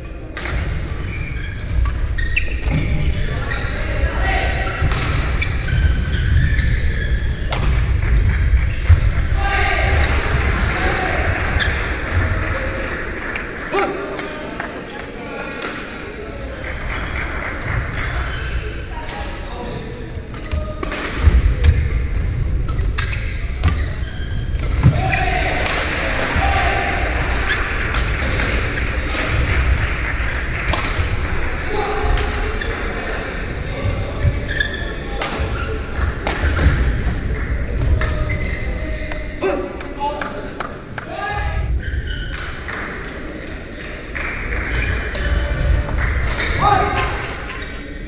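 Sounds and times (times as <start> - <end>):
shoe squeaks on court: 1.0 - 3.8, 5.4 - 7.4, 23.0 - 24.5, 33.6 - 35.8
racket hitting shuttlecock: 7.5 - 7.9, 20.3 - 21.9, 30.6 - 31.1, 35.2 - 36.8.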